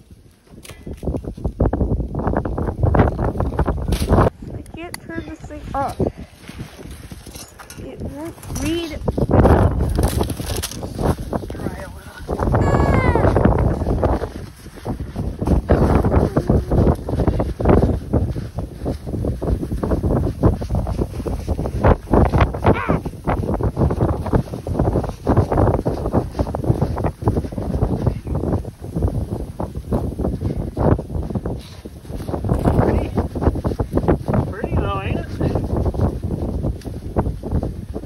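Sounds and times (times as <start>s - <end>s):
crunches and rustles in snow: 0.0s - 38.0s
wind buffeting microphone: 0.0s - 38.0s.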